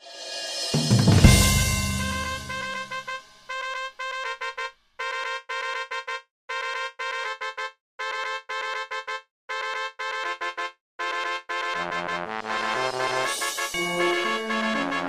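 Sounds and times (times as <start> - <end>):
synthesised brass fanfare: 1.2 - 15.0.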